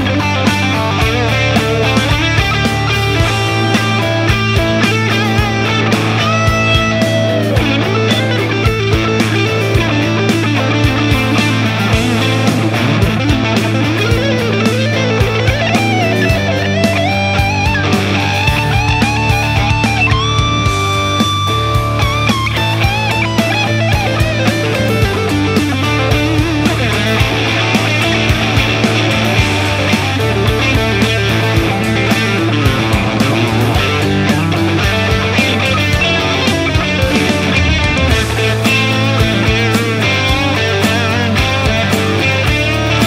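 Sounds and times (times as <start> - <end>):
overdriven electric guitars: 0.0 - 43.0.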